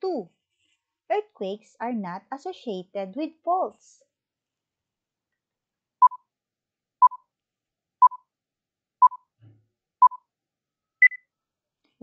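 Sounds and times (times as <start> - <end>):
short beeps: 9.0 - 9.2, 11.0 - 11.2.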